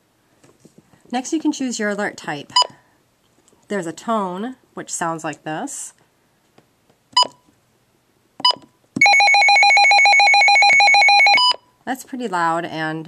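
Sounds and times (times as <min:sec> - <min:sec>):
keypress beeps: 0:07.2 - 0:07.5, 0:08.4 - 0:11.6.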